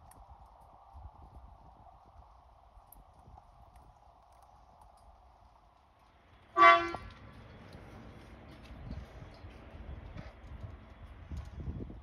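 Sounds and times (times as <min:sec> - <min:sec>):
short horn toot: 0:06.6 - 0:07.1.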